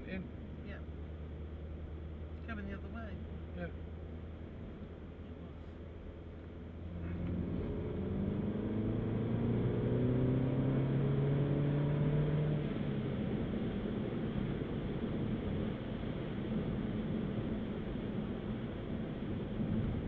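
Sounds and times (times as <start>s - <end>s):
car engine accelerating: 0.0s - 20.0s
road noise: 0.0s - 20.0s.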